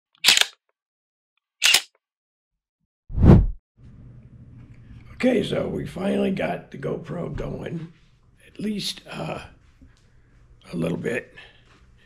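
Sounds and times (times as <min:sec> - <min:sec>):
sharp snaps: 0:00.2 - 0:00.6, 0:01.6 - 0:01.9.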